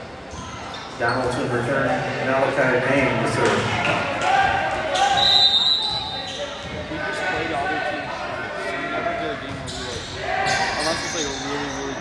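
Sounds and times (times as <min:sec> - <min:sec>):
voices calling out in gymnasium: 0:00.0 - 0:12.0.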